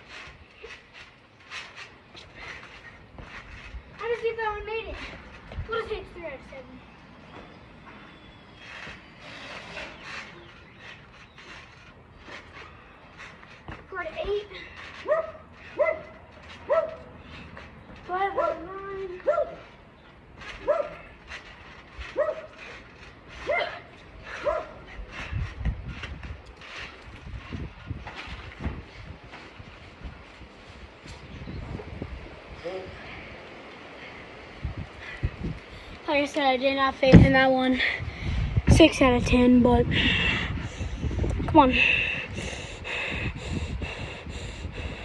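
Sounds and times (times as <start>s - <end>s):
dog barking: 15.1s - 16.0s, 16.7s - 17.0s, 19.3s - 19.6s, 20.6s - 21.0s, 22.2s - 22.5s, 24.4s - 24.8s.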